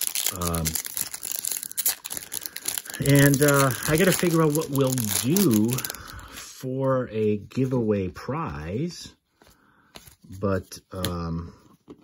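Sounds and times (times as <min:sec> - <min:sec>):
foil wrapper crinkling: 0:00.0 - 0:06.4.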